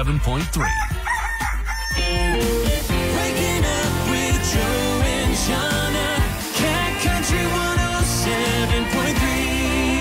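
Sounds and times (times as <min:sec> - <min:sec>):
background music: 0:00.0 - 0:10.0
rooster crowing: 0:00.6 - 0:02.5
music jingle: 0:02.0 - 0:10.0.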